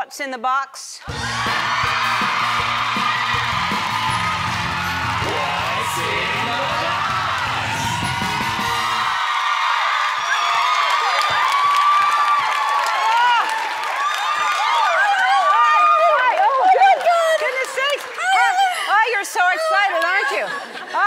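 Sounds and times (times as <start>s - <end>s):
upbeat theme music: 1.0s - 9.3s
audience cheering and screaming: 1.0s - 17.4s.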